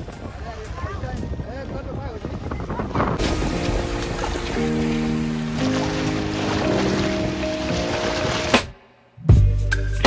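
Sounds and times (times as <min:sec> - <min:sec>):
wind buffeting microphone: 0:00.0 - 0:04.9
river water splashing on steps: 0:03.2 - 0:08.8
music with long held chords: 0:03.2 - 0:10.0.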